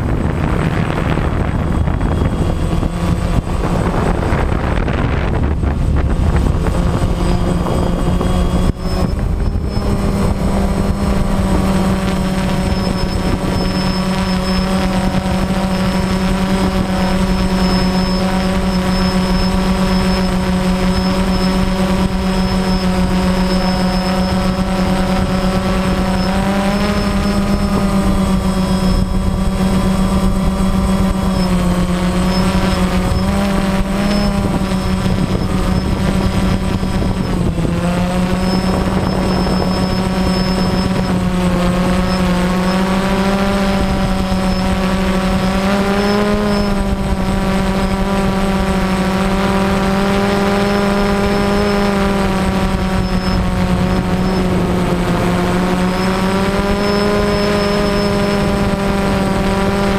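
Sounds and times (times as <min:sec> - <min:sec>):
drone propellers buzzing: 0:00.0 - 0:59.9.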